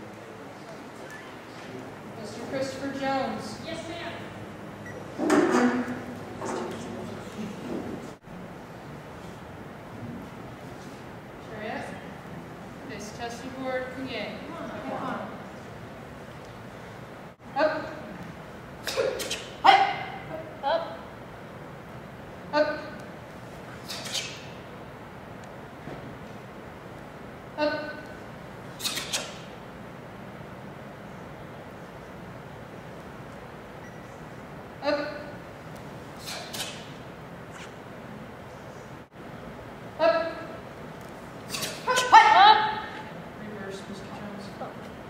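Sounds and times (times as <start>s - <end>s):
person shouting sharp calls: 19.0s - 21.0s, 41.6s - 43.0s
crisp snaps: 28.8s - 29.4s.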